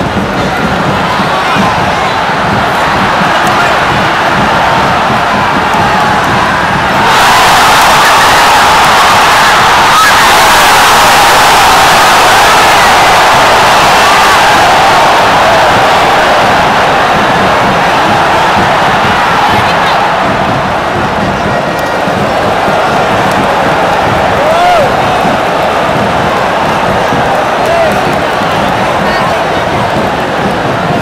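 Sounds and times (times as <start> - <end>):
stadium crowd cheering: 0.0 - 31.0.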